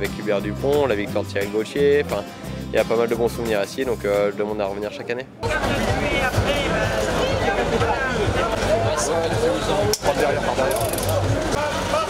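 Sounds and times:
crowd hubbub: 5.0 - 12.0.

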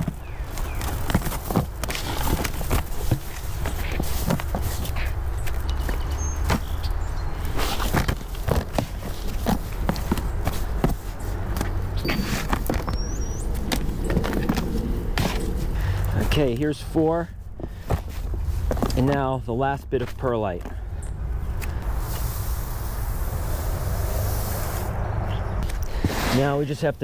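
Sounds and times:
soil crunching and rustling: 0.0 - 20.8, 25.6 - 27.0
low background rumble: 8.2 - 19.9.

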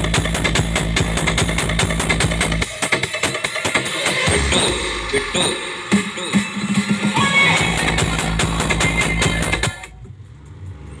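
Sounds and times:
loud dance music with heavy bass: 0.0 - 10.0.

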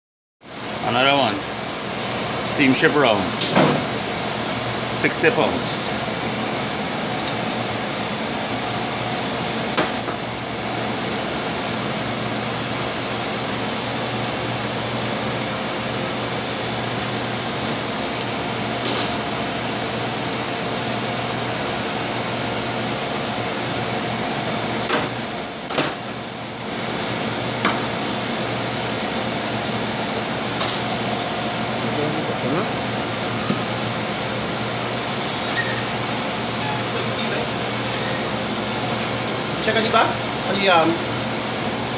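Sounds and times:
kitchen ventilation hum: 0.4 - 41.9.

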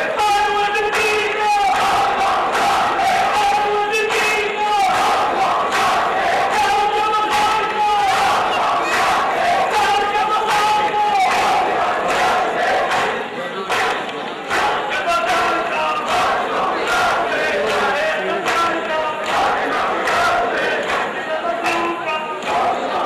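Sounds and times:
men chanting long held notes: 0.0 - 23.0.

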